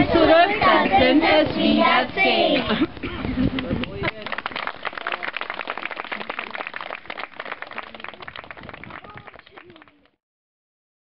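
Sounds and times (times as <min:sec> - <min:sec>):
voices: 0:00.0 - 0:05.4
audience applause: 0:03.6 - 0:10.1.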